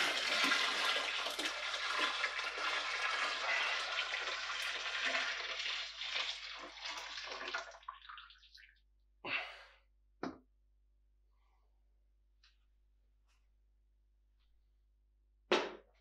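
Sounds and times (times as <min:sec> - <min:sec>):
liquid pouring into bucket: 0:00.0 - 0:08.8.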